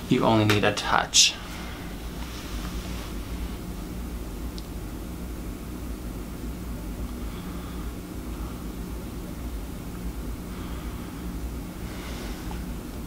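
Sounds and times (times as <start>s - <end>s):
low hum: 0.0s - 13.0s.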